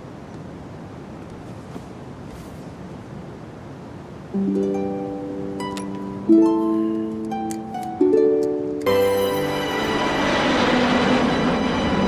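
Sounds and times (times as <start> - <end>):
background music: 4.4 - 12.0
jet airliner taking off: 8.9 - 12.0.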